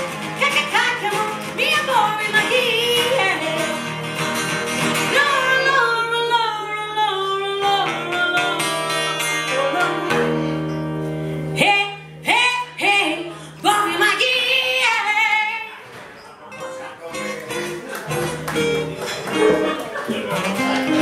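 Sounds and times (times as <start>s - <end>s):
guitar accompaniment: 0.0s - 21.0s
woman singing: 0.4s - 3.8s, 5.0s - 10.6s, 11.5s - 15.8s.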